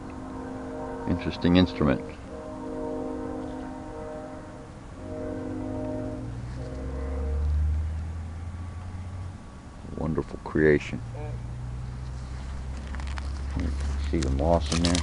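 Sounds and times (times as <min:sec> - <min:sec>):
long horn-like tones: 0:00.0 - 0:10.1, 0:11.0 - 0:12.0
low rumble: 0:00.0 - 0:10.4.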